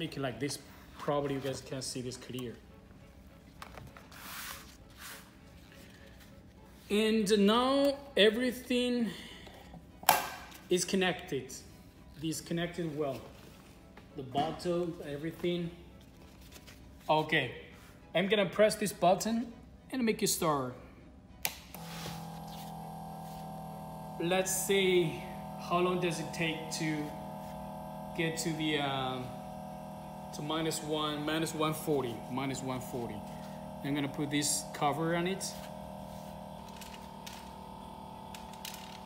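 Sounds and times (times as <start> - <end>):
machine humming: 21.7 - 39.0.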